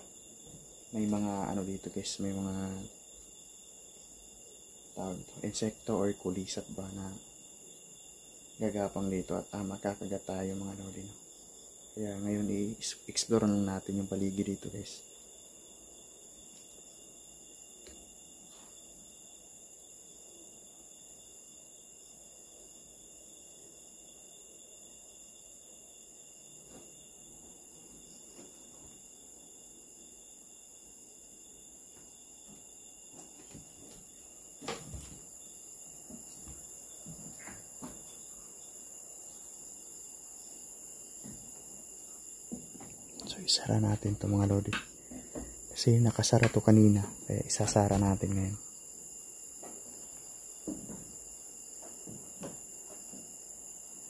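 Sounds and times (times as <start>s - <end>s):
night insects chorus: 0.0s - 54.0s.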